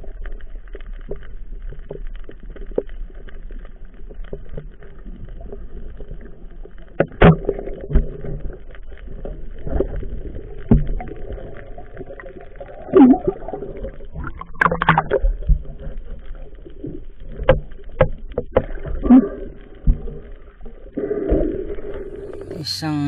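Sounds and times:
muffled underwater noise: 0:18.6 - 0:23.0.

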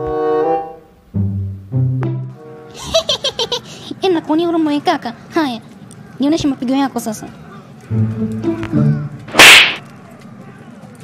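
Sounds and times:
low stepped musical tone: 0:00.0 - 0:02.8, 0:07.8 - 0:09.4
arrow swish: 0:09.3 - 0:09.9.

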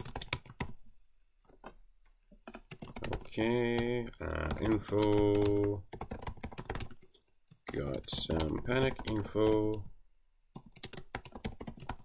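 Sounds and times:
typing on computer keyboard: 0:00.0 - 0:00.8, 0:02.5 - 0:09.9, 0:10.5 - 0:12.0.

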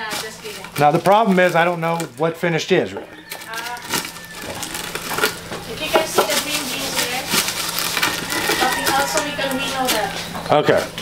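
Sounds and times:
people talking: 0:00.0 - 0:04.0, 0:05.7 - 0:07.4, 0:08.5 - 0:11.0.

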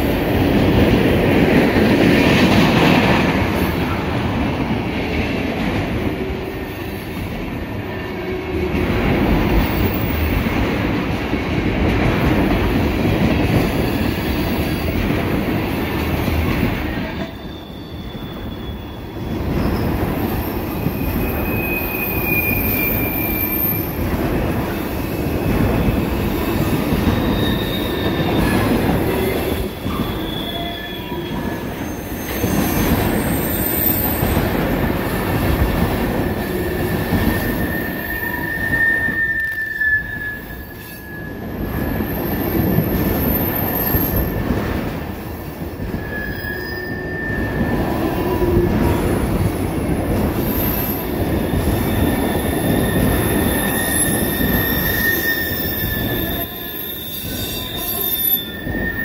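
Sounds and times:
rumble of train wheels on rail: 0:00.0 - 0:59.0
high wheel squeals: 0:17.3 - 0:24.0, 0:27.0 - 0:34.4, 0:36.2 - 0:44.4, 0:46.0 - 0:48.3, 0:50.5 - 0:59.0.

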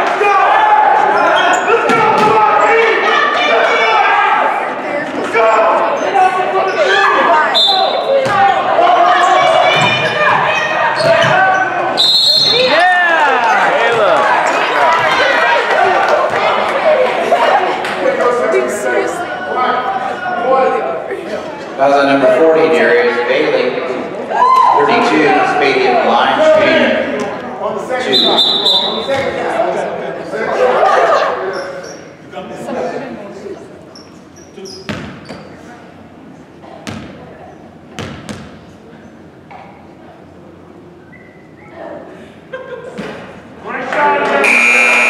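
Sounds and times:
people shouting in echoing hall: 0:00.0 - 0:20.9
sneaker squeaks: 0:01.1 - 0:02.3, 0:05.5 - 0:08.4, 0:09.1 - 0:12.7, 0:28.2 - 0:29.4, 0:31.5 - 0:32.1, 0:33.9 - 0:35.7, 0:41.0 - 0:41.8.

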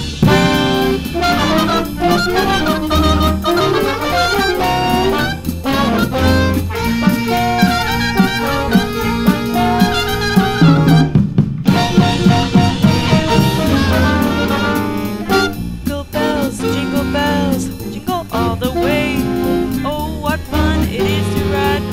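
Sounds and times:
jazz band playing swing: 0:00.0 - 0:21.9.

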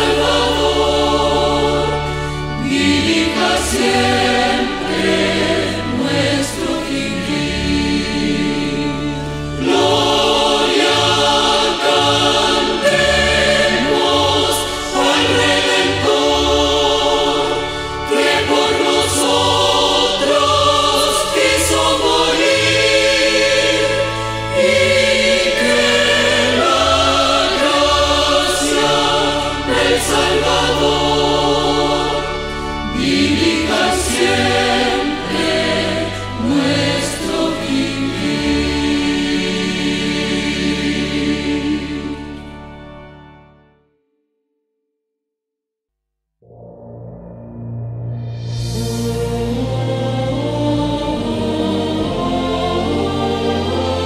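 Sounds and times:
choir singing a hymn: 0:00.0 - 0:43.4, 0:48.7 - 0:54.0
held low bass notes: 0:46.4 - 0:53.2.

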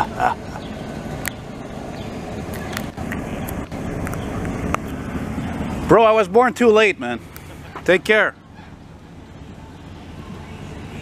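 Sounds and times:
car engine rumbling past: 0:00.0 - 0:11.0
street noise: 0:00.0 - 0:11.0.

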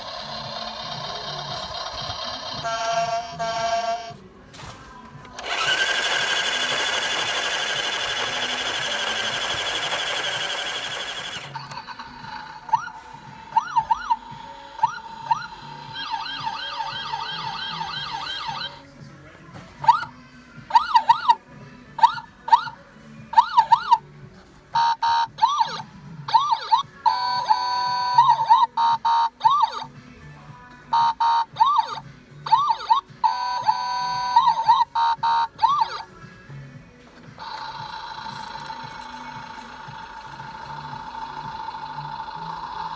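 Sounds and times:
toy police siren wailing: 0:00.0 - 0:04.1, 0:05.4 - 0:18.8, 0:19.8 - 0:20.1, 0:20.7 - 0:21.4, 0:22.0 - 0:24.0, 0:24.8 - 0:29.9, 0:31.0 - 0:36.1, 0:37.4 - 0:42.9.

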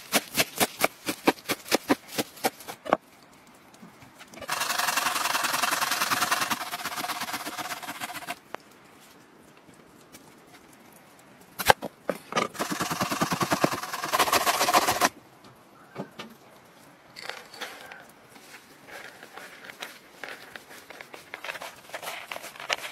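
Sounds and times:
rasping grating strokes: 0:04.4 - 0:08.4.

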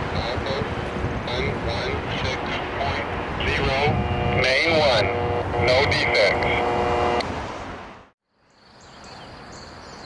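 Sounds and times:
train horn blasts: 0:03.7 - 0:07.2.

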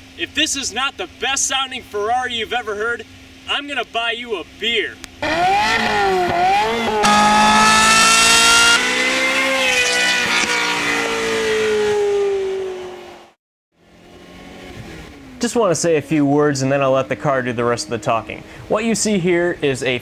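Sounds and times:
sports car engine revving: 0:05.1 - 0:18.9.

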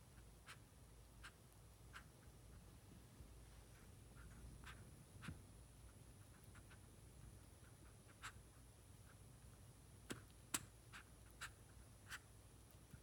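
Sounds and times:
squirrel licking and nibbling: 0:03.6 - 0:13.0.

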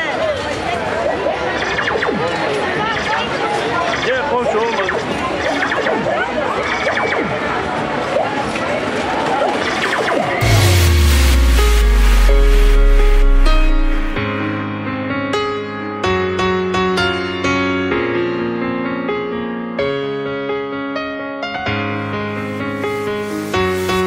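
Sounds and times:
crowd voices talking and calling: 0:00.0 - 0:14.2
electronic music with heavy bass: 0:09.9 - 0:14.2.

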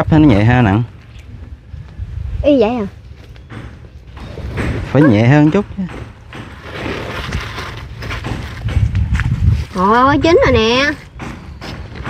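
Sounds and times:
knife scraping through ash and leaves: 0:06.6 - 0:08.6.

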